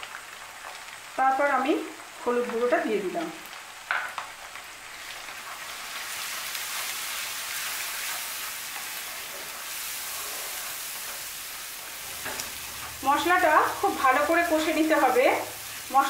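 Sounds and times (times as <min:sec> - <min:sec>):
onions sizzling in hot oil: 0:00.0 - 0:16.0.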